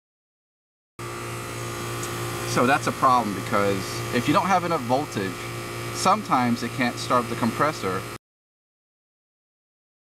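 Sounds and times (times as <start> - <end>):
air conditioner electrical hum: 1.0 - 8.2.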